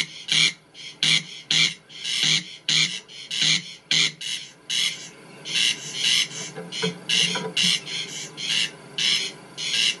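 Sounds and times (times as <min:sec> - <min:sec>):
corncrake rasping call: 0:00.0 - 0:10.0.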